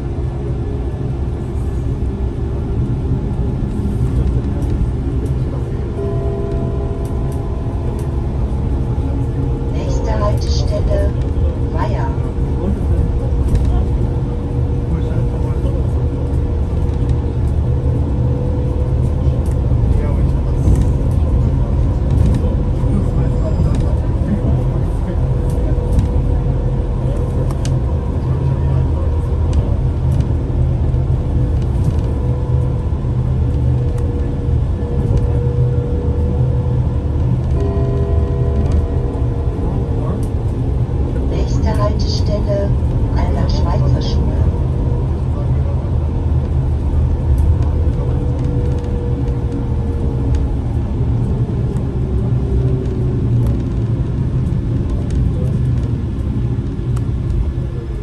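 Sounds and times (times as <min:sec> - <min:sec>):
bus rumbling over road: 0:00.0 - 0:58.0.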